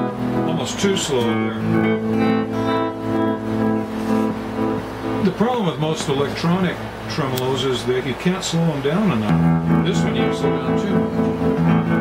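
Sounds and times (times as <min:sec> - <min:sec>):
electric guitar chord with tremolo: 0:00.0 - 0:05.5, 0:09.3 - 0:12.0.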